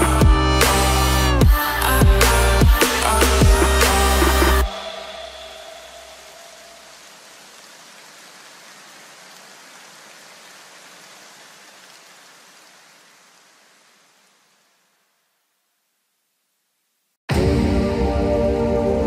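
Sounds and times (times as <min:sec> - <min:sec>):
electronic background music: 0:00.0 - 0:06.4
rain-like hiss: 0:02.4 - 0:17.2.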